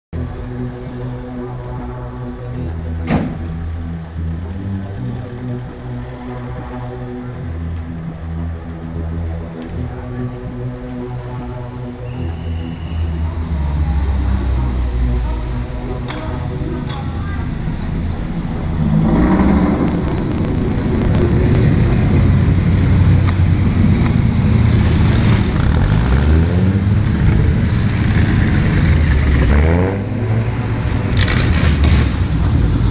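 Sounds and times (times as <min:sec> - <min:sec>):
background music: 0:00.2 - 0:32.9
vintage car engines running: 0:00.2 - 0:32.9.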